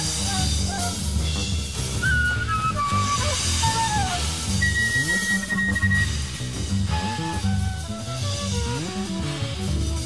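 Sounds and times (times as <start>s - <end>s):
double bass: 0.0s - 10.0s
drums: 0.0s - 10.0s
high held wind instrument note: 0.0s - 10.0s.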